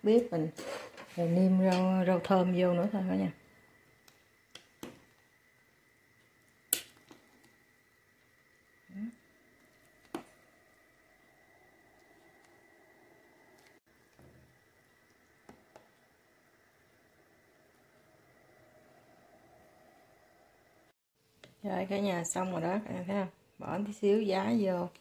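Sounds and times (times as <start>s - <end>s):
faint high hum: 1.0s - 21.0s.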